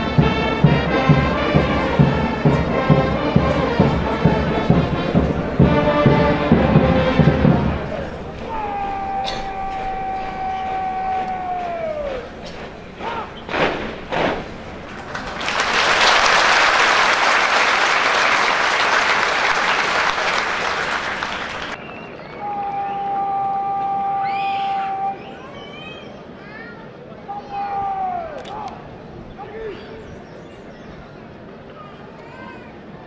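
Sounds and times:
crowd applause: 2.1s - 24.4s
person shouting drill command: 8.4s - 12.2s.

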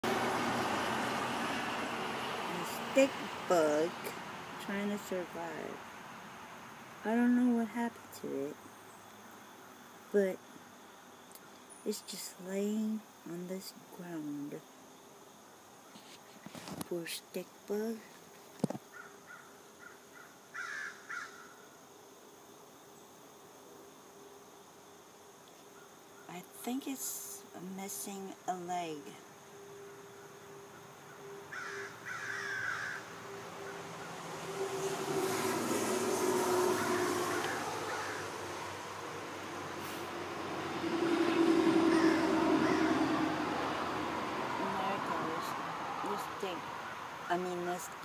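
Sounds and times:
insect trilling: 15.9s - 21.7s, 25.5s - 48.0s
harsh bird calls: 30.2s - 44.4s
steady rushing noise: 33.0s - 46.2s.

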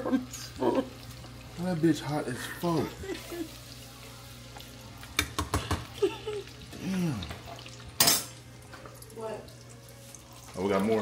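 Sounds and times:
oil sizzling in a pot: 0.0s - 11.0s.

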